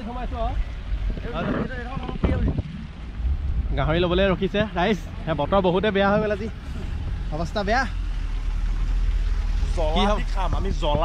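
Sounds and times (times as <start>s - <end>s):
wind buffeting microphone: 0.0s - 7.2s.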